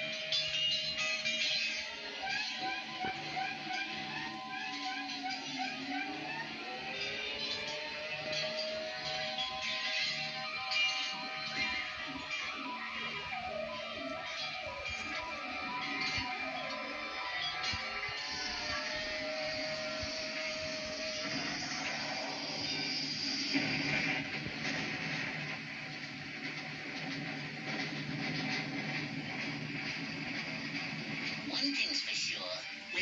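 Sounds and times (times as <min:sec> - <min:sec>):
orchestral cartoon music: 0:00.0 - 0:33.0
noisy crash: 0:08.3 - 0:31.6.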